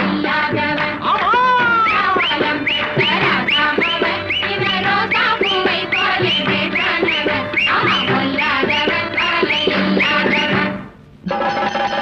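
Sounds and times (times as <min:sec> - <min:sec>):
film song with sliding notes: 0:00.0 - 0:12.0
band accompaniment: 0:01.1 - 0:12.0.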